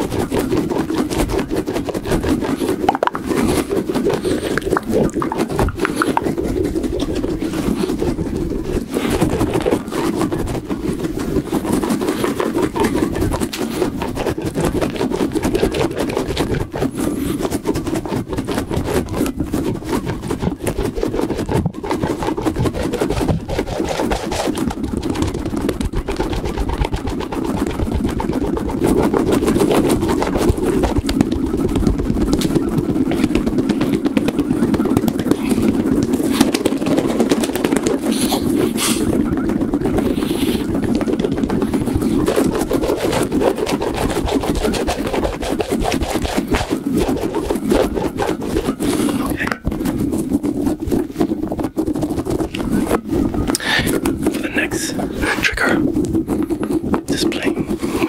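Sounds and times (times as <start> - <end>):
rubbery ball squeezed crackling: 0.0 - 58.0.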